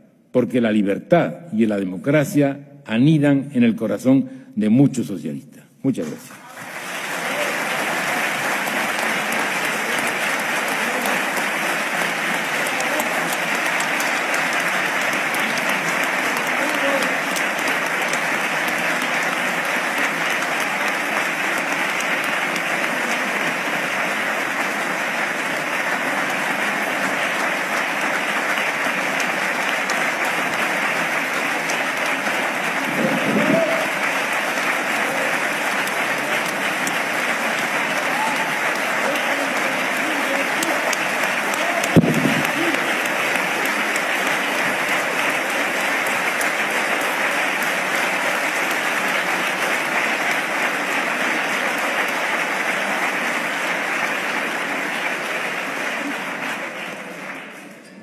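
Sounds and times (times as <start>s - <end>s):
audience applauding: 6.0s - 58.0s.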